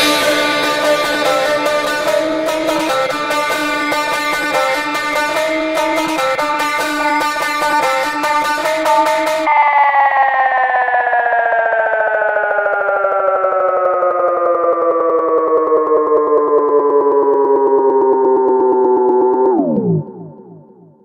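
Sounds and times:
synthesizer note sliding down: 0:00.0 - 0:21.0.

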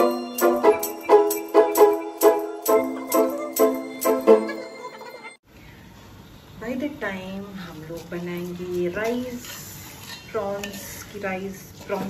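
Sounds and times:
person holding long pitches: 0:00.0 - 0:05.3.

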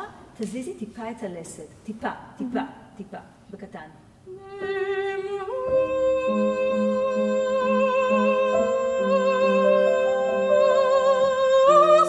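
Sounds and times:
soprano singing with vibrato: 0:04.3 - 0:12.0
piano accompaniment: 0:05.6 - 0:12.0.

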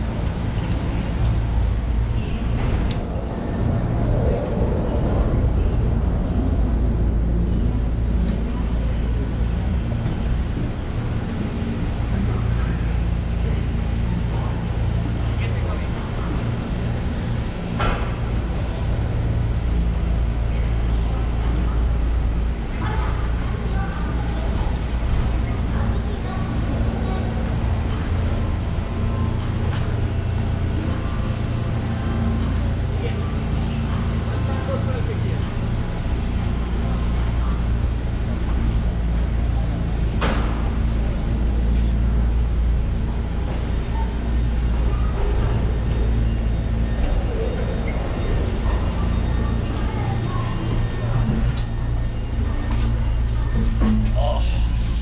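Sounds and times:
indistinct voices: 0:00.0 - 0:55.0
low mechanical rumble and hum: 0:00.0 - 0:55.0.

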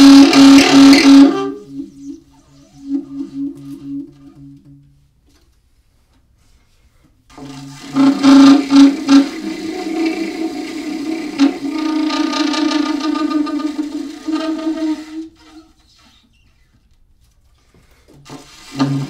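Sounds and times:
alto saxophone improvising: 0:00.0 - 0:05.1, 0:07.3 - 0:16.9, 0:18.2 - 0:19.0.

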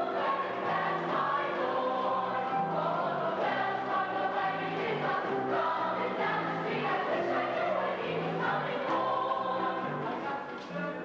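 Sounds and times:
chorus singing: 0:00.0 - 0:11.0
musical accompaniment: 0:00.0 - 0:11.0.

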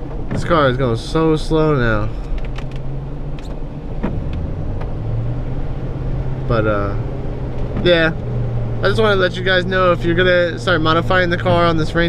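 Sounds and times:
car engine drone from inside: 0:00.0 - 0:12.0.

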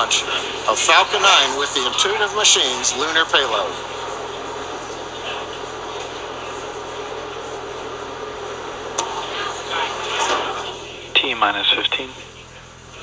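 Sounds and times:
background hum and hiss: 0:00.0 - 0:13.0
faint indistinct voices: 0:00.0 - 0:13.0.

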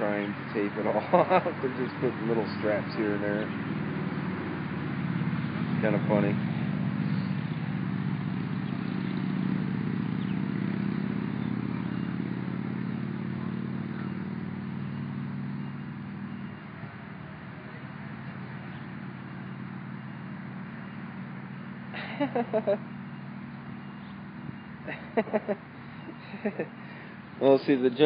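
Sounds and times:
vehicle engine running at low revs: 0:00.0 - 0:28.0.

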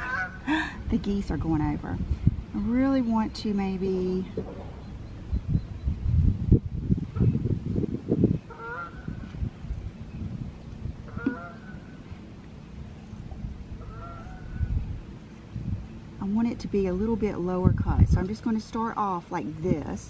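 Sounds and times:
geese honking: 0:00.0 - 0:00.5, 0:08.4 - 0:09.4, 0:11.0 - 0:12.2, 0:13.7 - 0:14.9
low rumbling noise: 0:00.0 - 0:20.0.

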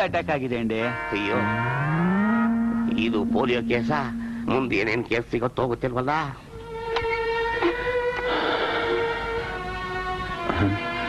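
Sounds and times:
cow mooing: 0:00.7 - 0:04.9.

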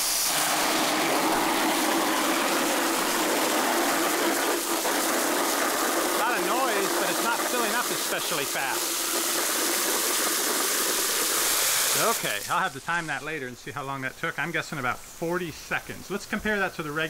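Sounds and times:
hose water spraying into bucket: 0:00.0 - 0:17.0.

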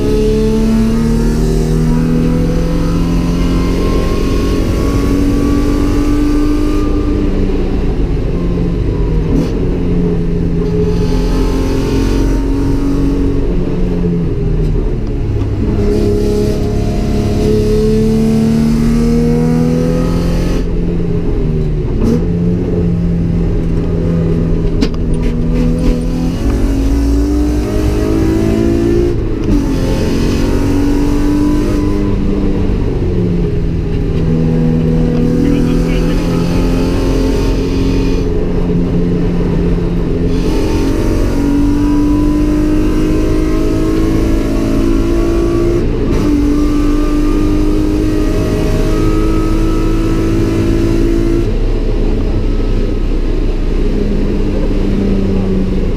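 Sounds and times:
car engine revving: 0:00.0 - 0:55.9.

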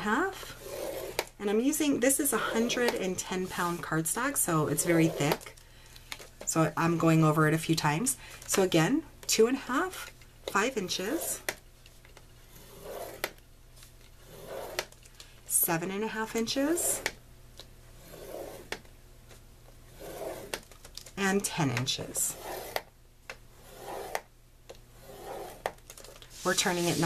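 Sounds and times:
stylus scraping paper: 0:00.0 - 0:01.3, 0:02.2 - 0:05.5, 0:10.6 - 0:11.5, 0:12.5 - 0:13.3, 0:14.2 - 0:14.9, 0:16.1 - 0:17.1, 0:18.0 - 0:18.8, 0:19.9 - 0:20.7, 0:21.4 - 0:22.9, 0:23.6 - 0:24.3, 0:25.0 - 0:27.0
paper sheet sliding: 0:25.0 - 0:27.0.

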